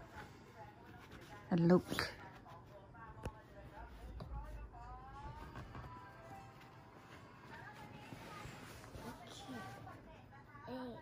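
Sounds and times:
fabric sleeping mat rustling: 3.6s - 10.2s.

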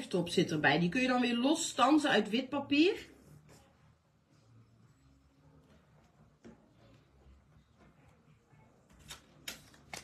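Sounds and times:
card handling: 8.9s - 10.0s.

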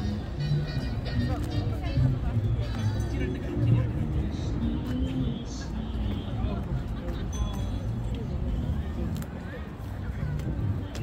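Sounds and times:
passers-by chatting: 0.0s - 11.0s
traffic rumble: 0.0s - 11.0s.

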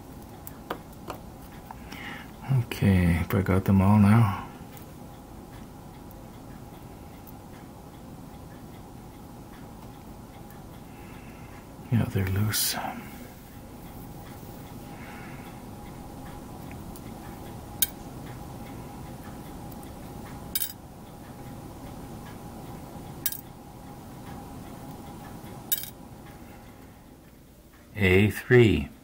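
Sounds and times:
faint hum: 0.0s - 29.0s
metallic clicks of small tools: 23.2s - 23.5s, 25.7s - 26.0s.

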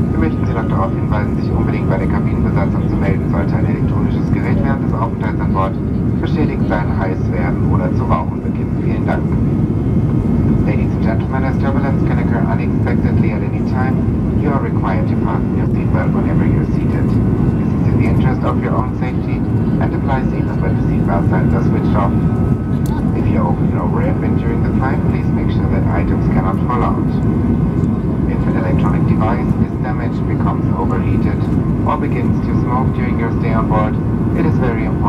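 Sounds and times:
cabin announcement over pa: 0.0s - 9.6s, 10.2s - 35.0s
airplane cabin engine roar: 0.0s - 35.0s.

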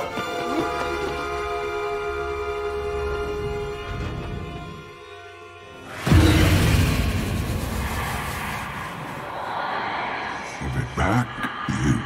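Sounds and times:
noisy rushing roar: 5.9s - 10.7s
loud boom: 6.0s - 9.3s.

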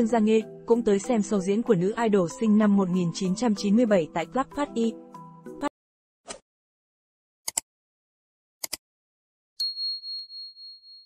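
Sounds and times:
click: 7.5s - 7.7s, 8.6s - 8.8s
high bell ding: 9.6s - 11.0s.

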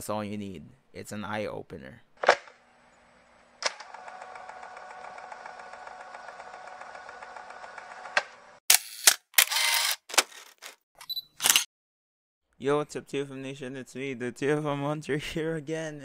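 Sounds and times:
sharp shutter clicks and rasps: 3.6s - 11.7s
camera click: 8.7s - 10.0s, 11.0s - 11.7s.

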